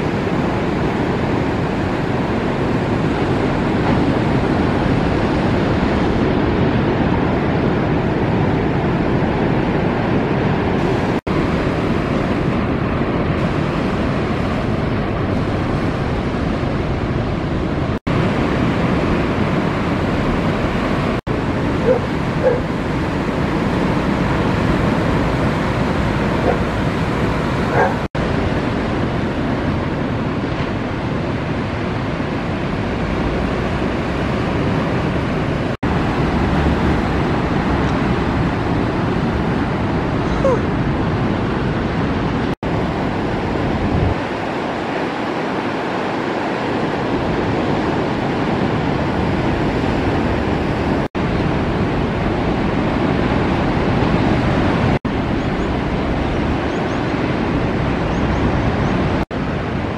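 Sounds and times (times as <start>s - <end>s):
ocean surf washing onto beach: 0.0s - 59.9s.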